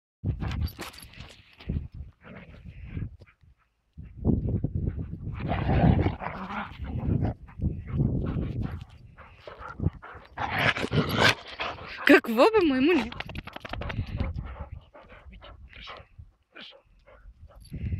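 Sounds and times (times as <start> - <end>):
dogs running across grass: 12.6 - 15.4.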